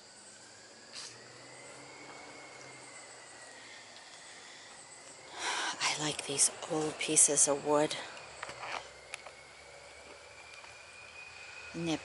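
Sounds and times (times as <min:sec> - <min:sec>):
faint outdoor ambience: 0:00.0 - 0:12.0
steady high-pitched tone: 0:00.0 - 0:12.0.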